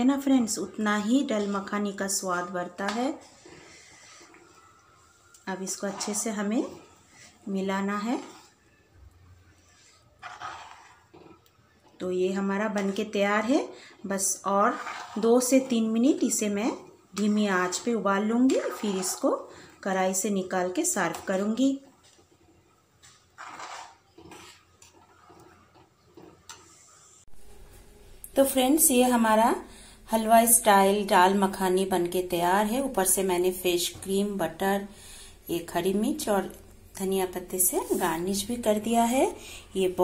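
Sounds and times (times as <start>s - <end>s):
wooden spoon stirring thick food: 0.0s - 27.2s.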